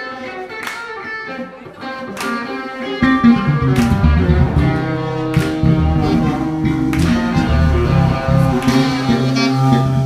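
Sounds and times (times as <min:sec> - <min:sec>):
electric guitar solo: 0:00.0 - 0:10.0
jazz band playing: 0:02.3 - 0:10.0
heavy low bass: 0:03.0 - 0:10.0.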